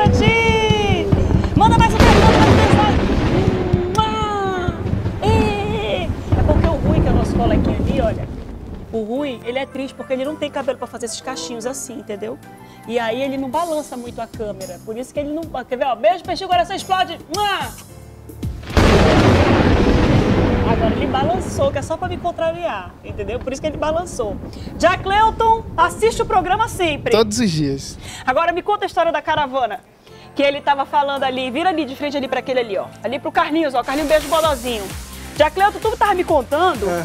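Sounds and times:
explosion-like burst: 0:00.0 - 0:08.9, 0:18.6 - 0:28.2
background music: 0:00.0 - 0:22.2, 0:25.6 - 0:37.0
low rumble: 0:18.7 - 0:28.5.

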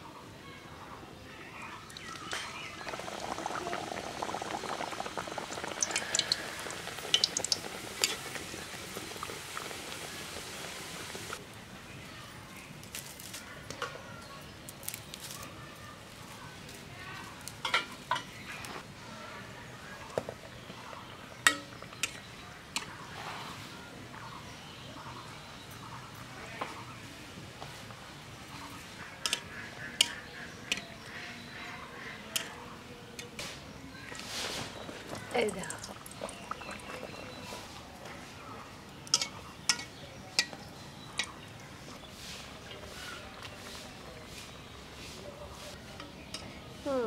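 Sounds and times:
hot oil sizzling and crackling: 0:01.8 - 0:11.5, 0:20.1 - 0:23.6, 0:27.6 - 0:31.2, 0:33.4 - 0:45.2.

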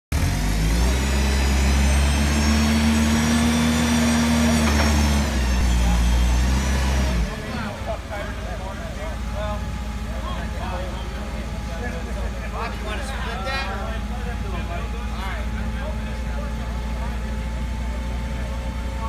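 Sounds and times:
forklift engine whining: 0:00.1 - 0:19.0.

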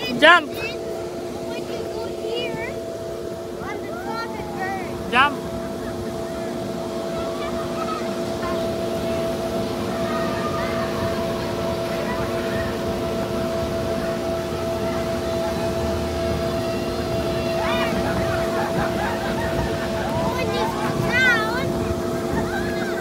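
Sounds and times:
children's voices: 0:00.0 - 0:02.9, 0:03.5 - 0:23.0
air blower humming: 0:00.0 - 0:23.0.

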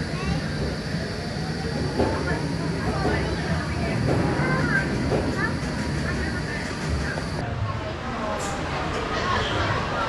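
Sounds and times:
faint voices: 0:00.0 - 0:10.0
roller coaster train rumbling past: 0:00.0 - 0:10.0.

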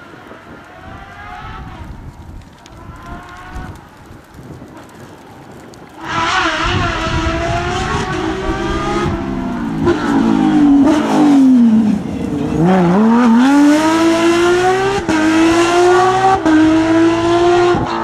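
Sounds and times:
race car engine revving: 0:06.0 - 0:18.0.

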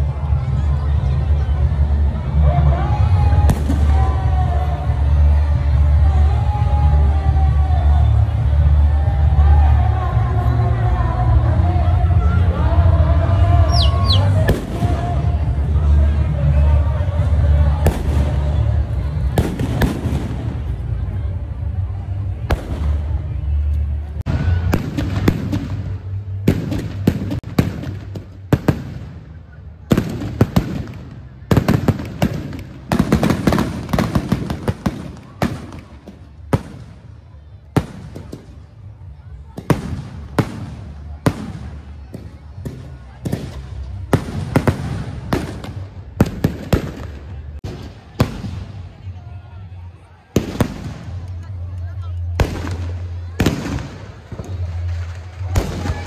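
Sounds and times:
fireworks bangs and crackles: 0:00.0 - 0:56.0.

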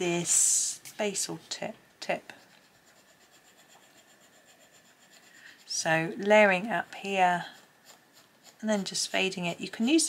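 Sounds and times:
coloured pencil scratching on paper: 0:02.3 - 0:10.0.

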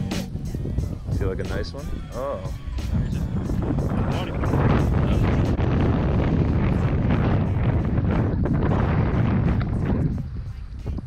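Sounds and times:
music with quick steady beat: 0:00.0 - 0:05.6
heavy low rumble: 0:00.0 - 0:11.0
wind buffeting microphone: 0:00.0 - 0:11.0.

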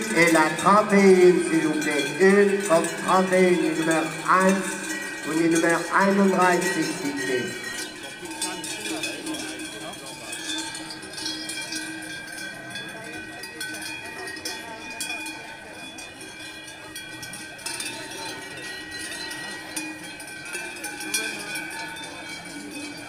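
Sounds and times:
cowbells ringing: 0:00.0 - 0:23.0
murmur of crowd voices: 0:00.0 - 0:23.0.

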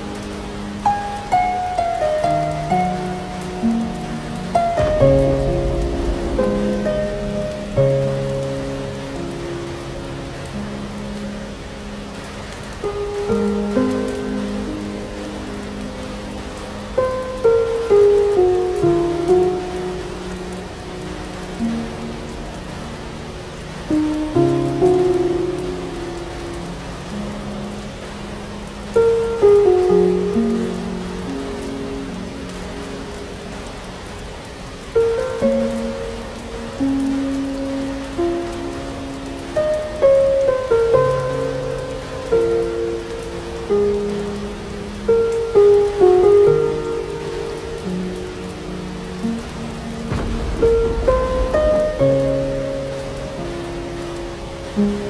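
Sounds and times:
rain pattering: 0:00.0 - 0:55.0
low rumble of thunder: 0:02.2 - 0:10.6, 0:48.8 - 0:54.6.

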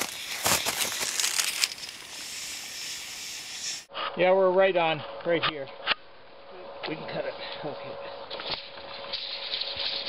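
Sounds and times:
snow crunching: 0:00.0 - 0:03.8
steady high hiss: 0:00.0 - 0:03.9.

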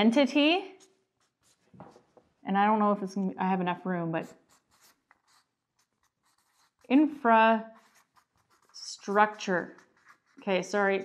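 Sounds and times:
marker scratching on whiteboard: 0:00.7 - 0:02.2, 0:04.2 - 0:11.0.

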